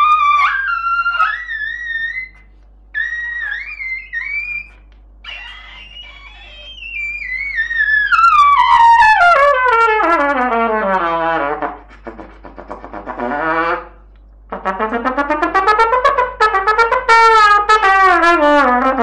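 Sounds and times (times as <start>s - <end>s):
trumpet playing high phrases: 0.0s - 5.6s, 6.2s - 11.9s, 12.9s - 19.0s.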